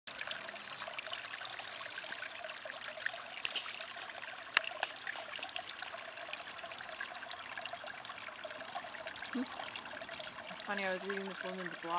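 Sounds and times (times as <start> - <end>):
fountain water trickling and splashing: 0.1 - 11.9.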